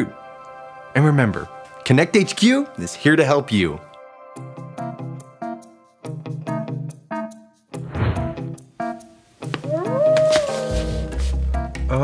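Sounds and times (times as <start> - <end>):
background music: 0.0 - 12.0
animal howling: 9.6 - 11.4.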